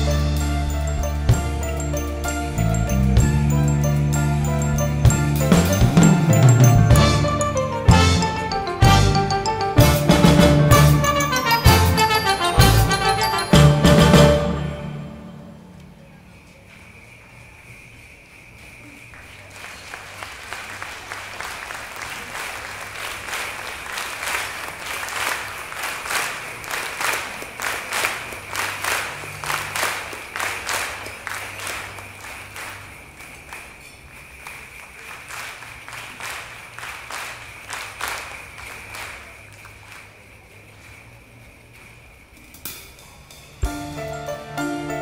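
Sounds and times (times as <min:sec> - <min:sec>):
crowd clapping in rhythm: 0:00.0 - 0:13.6, 0:19.1 - 0:41.9
orchestra playing: 0:00.0 - 0:16.0, 0:43.6 - 0:45.0.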